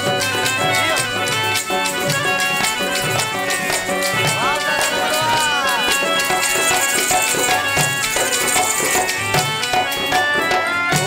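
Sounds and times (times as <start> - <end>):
electronic keyboard notes: 0.0 - 11.0
person singing: 3.7 - 7.2.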